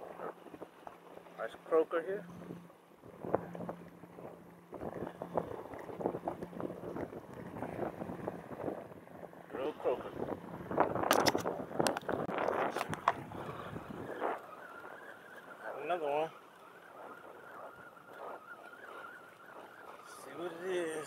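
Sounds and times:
handling rustling and clicks: 10.8 - 15.6
faint high whine: 12.7 - 21.0.

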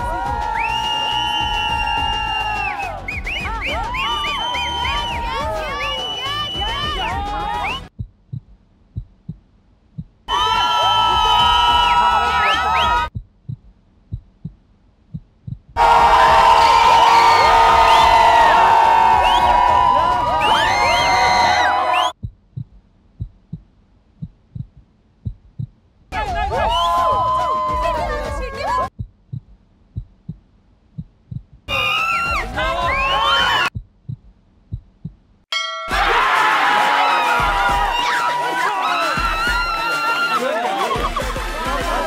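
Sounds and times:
crowd shouting and cheering: 0.0 - 7.9, 10.3 - 13.1, 15.8 - 22.1, 26.2 - 28.9, 31.7 - 33.7, 35.6 - 42.0
heartbeat thuds: 3.1 - 5.8, 6.6 - 10.3, 13.0 - 16.6, 22.1 - 31.7, 32.3 - 35.4.

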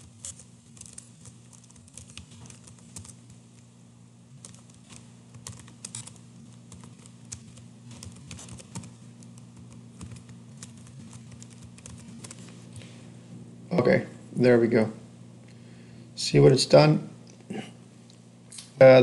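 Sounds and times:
computer keyboard typing: 0.0 - 3.6, 4.4 - 12.4
steady low hum: 0.0 - 19.0.

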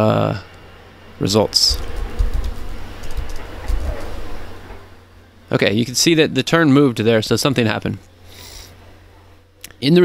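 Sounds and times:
computer keyboard typing: 1.7 - 4.1.

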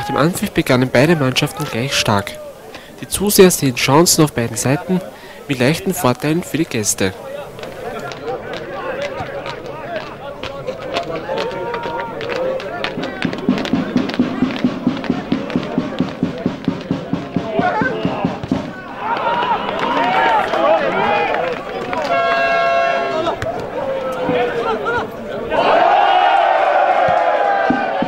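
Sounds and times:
crowd shouting: 0.0 - 2.7, 7.2 - 28.0
drum beaten fast: 12.7 - 19.7.

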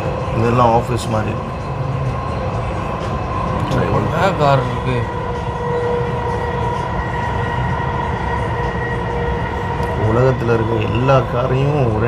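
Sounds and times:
high whine: 0.0 - 12.0
train rumbling in motion: 0.0 - 12.0.

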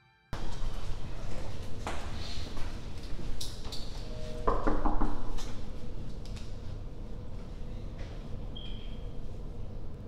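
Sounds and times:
knocks on a door: 4.5 - 5.3.

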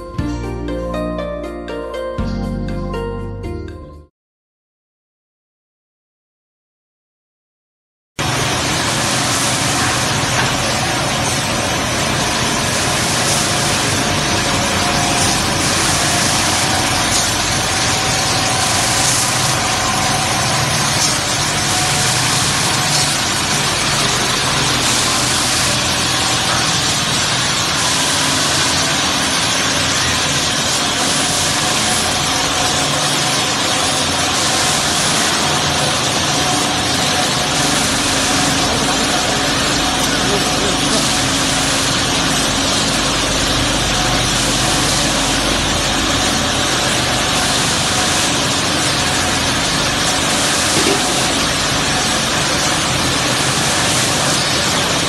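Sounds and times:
polishing machine with hiss: 8.2 - 55.0.

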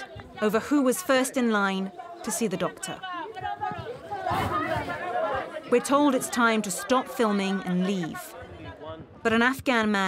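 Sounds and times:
women arguing in raised voices: 0.0 - 10.0.

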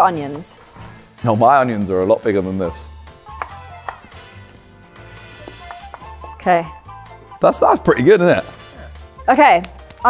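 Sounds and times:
background music with bass: 0.8 - 10.0
knife chopping on wooden board: 5.4 - 6.4.

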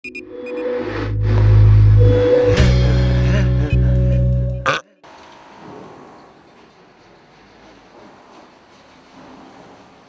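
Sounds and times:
deep bass drone: 0.8 - 4.7.

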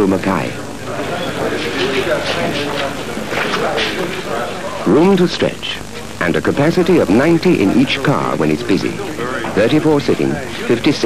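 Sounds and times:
indistinct talking: 0.0 - 11.0
tape hiss: 0.0 - 11.0.

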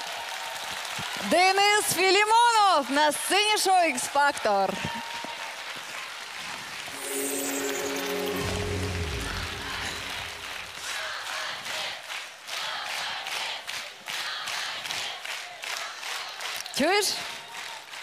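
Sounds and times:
audience applauding and cheering: 6.9 - 13.4
show music with falling tone: 7.0 - 10.9.

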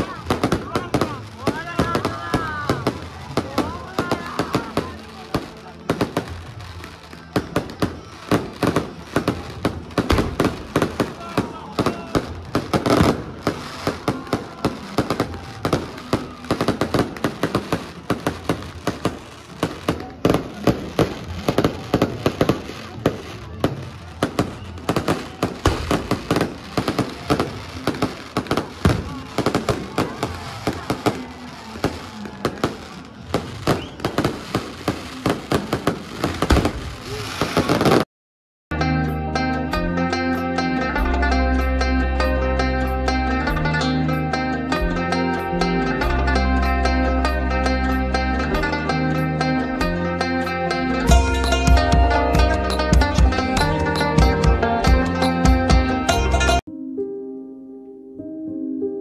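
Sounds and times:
fireworks bangs and crackles: 0.0 - 38.1.

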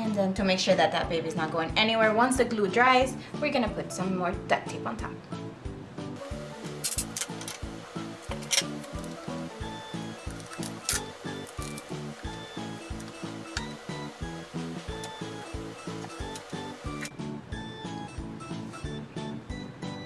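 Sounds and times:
background music with beat: 5.6 - 20.0.

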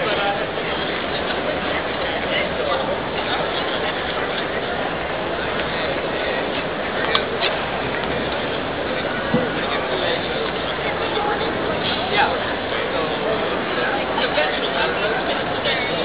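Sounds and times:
crowd chatter: 0.0 - 16.0.

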